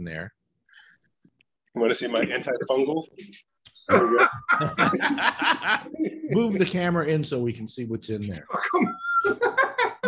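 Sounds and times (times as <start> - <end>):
men chuckling and laughing: 3.8 - 6.3, 8.5 - 10.0.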